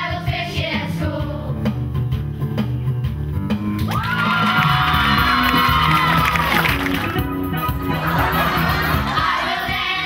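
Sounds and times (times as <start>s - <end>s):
backing music with bass line: 0.0s - 10.0s.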